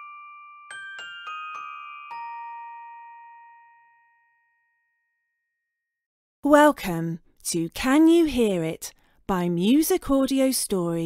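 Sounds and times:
bell-like chime: 0.0s - 6.0s.

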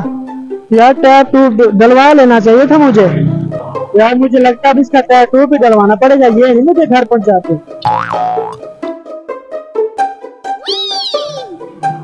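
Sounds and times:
plucked comic music: 7.8s - 12.0s
cat meow sound effect: 10.6s - 11.5s.

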